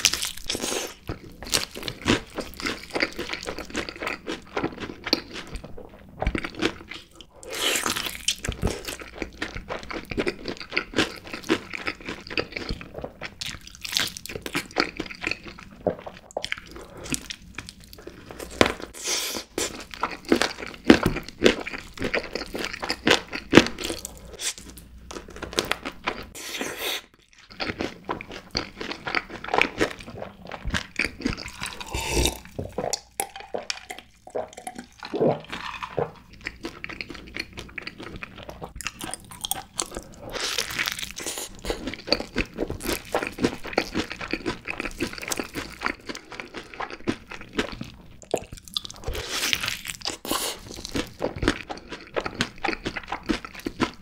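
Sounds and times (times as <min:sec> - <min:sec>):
crunching and chewing fried chicken: 0:00.0 - 0:54.0.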